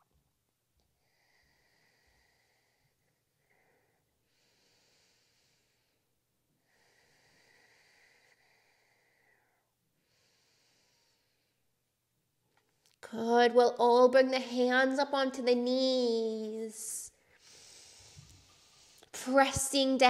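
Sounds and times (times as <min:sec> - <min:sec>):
slow deep breathing: 0:01.0 - 0:11.8, 0:17.1 - 0:19.2.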